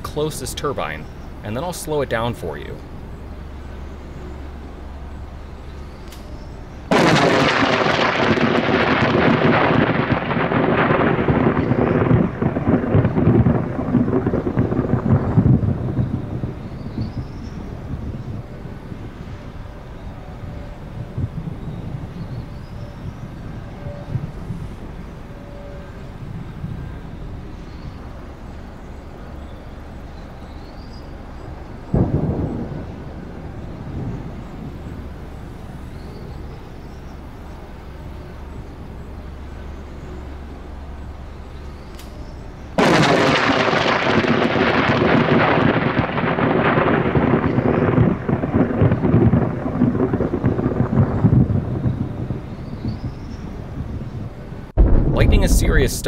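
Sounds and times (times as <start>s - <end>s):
thunder rumbling: 6.3s - 28.9s, 31.4s - 36.5s, 42.8s - 56.0s
lightning crack: 6.9s - 17.4s, 31.9s - 34.8s, 42.8s - 53.8s, 54.7s - 56.0s.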